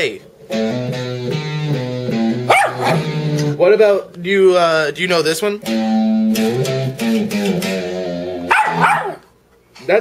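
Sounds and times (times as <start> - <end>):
dog barking: 2.5 - 3.1, 8.5 - 9.3.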